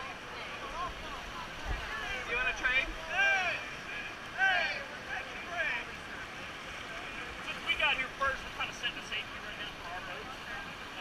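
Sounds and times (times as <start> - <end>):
people talking: 0.0 - 11.0
whitewater rushing: 0.0 - 11.0.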